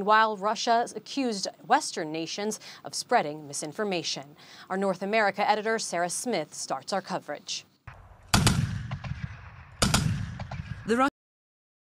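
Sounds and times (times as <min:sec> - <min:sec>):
gunshots with rolling echo: 0:07.9 - 0:11.1.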